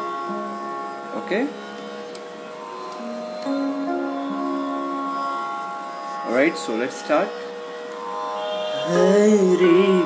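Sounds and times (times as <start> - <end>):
electronic keyboard notes: 0.0 - 10.0.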